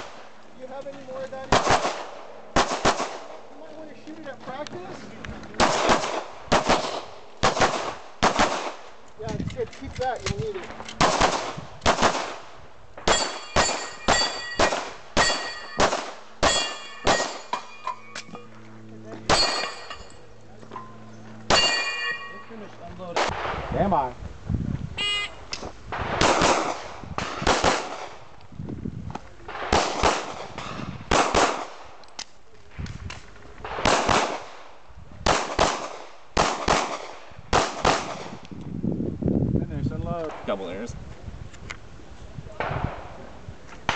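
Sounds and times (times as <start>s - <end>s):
pistol shots: 1.5s - 3.5s, 5.6s - 9.0s, 10.9s - 18.2s, 19.3s - 20.0s, 21.5s - 22.4s, 25.9s - 28.2s, 29.5s - 32.0s, 33.6s - 38.4s
metallic ring of steel targets: 13.1s - 18.6s, 19.2s - 22.7s.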